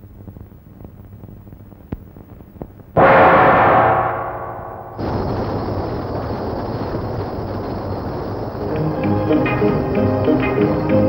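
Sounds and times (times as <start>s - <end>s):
gong: 3.0s - 5.7s
loud rushing rumble: 3.0s - 5.7s.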